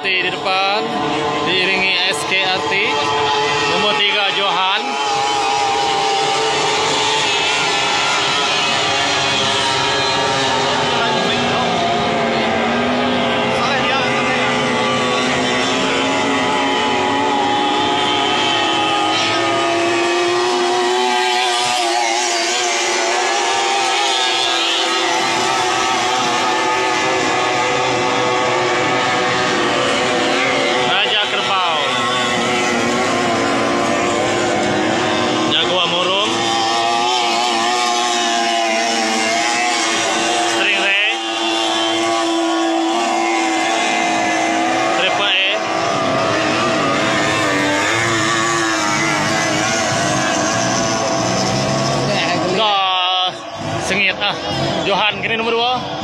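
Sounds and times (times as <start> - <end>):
racing outboard motors droning: 0.0 - 56.0.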